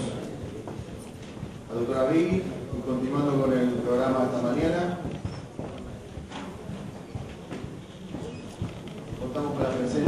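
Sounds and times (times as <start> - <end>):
footsteps on hard floor: 0.4 - 10.0.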